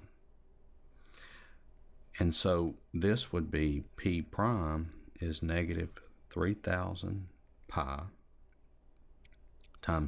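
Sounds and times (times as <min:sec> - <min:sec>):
person speaking: 0:02.0 - 0:08.5, 0:09.3 - 0:10.0.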